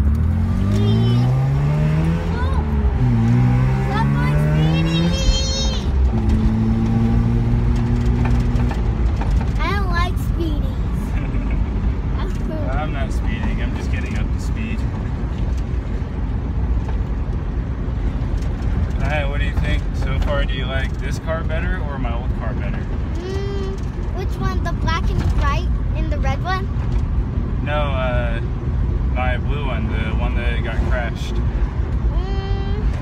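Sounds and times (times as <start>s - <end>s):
rotary engine accelerating: 0.0s - 16.0s
road noise: 0.0s - 33.0s.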